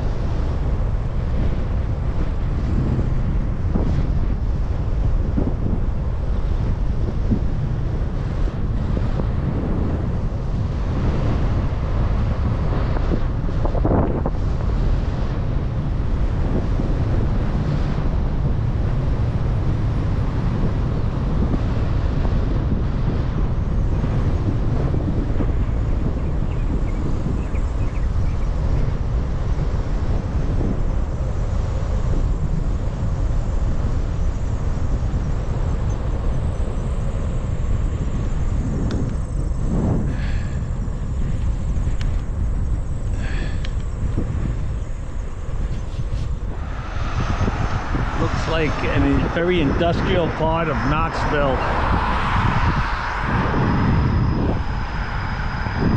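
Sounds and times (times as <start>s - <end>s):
wind buffeting microphone: 0.0s - 55.9s.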